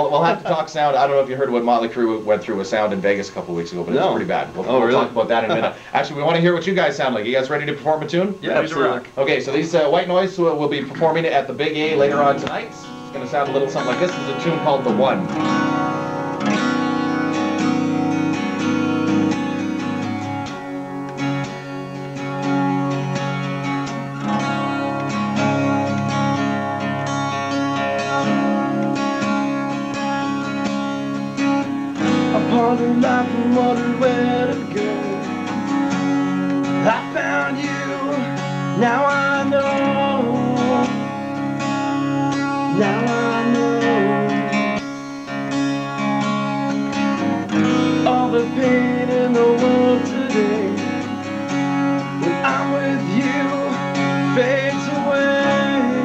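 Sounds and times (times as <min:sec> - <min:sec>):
strummed guitar chords: 0:00.0 - 0:56.0
person singing: 0:11.8 - 0:12.9, 0:32.2 - 0:35.8, 0:36.7 - 0:41.6, 0:42.6 - 0:44.9, 0:47.5 - 0:51.2, 0:52.2 - 0:56.0
rock band playing live: 0:12.0 - 0:56.0.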